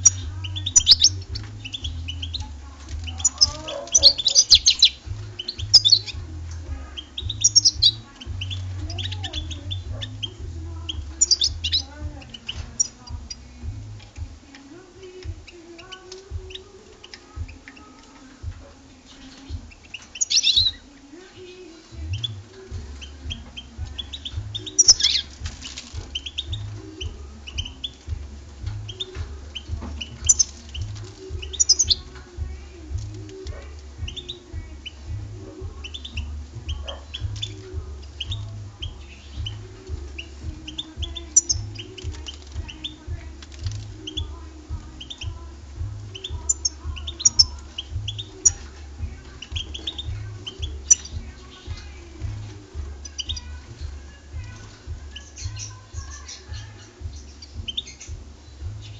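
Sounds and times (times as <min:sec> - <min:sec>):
finch twittering: 0:00.0 - 0:58.9.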